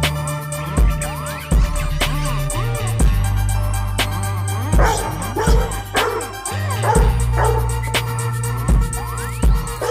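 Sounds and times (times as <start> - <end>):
hip hop music: 0.0 - 9.9
dog yipping barks: 4.8 - 7.7.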